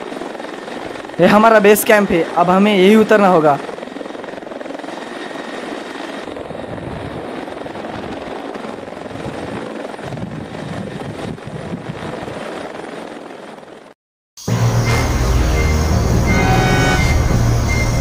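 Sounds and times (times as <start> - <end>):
helicopter rotor: 0.0 - 18.0.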